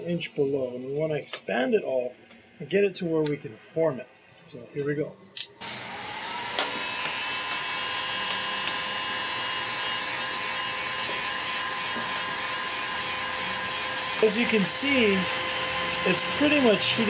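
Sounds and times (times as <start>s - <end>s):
motor whine: 2.4s - 17.0s
heat gun blowing air: 5.6s - 17.0s.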